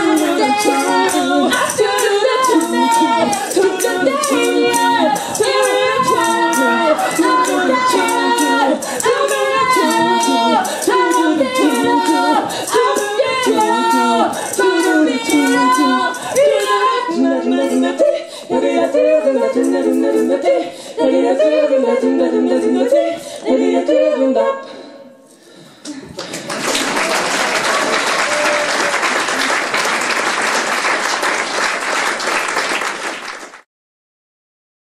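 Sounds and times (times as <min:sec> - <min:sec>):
female trio singing a cappella: 0:00.0 - 0:25.6
audience applauding: 0:25.9 - 0:33.6.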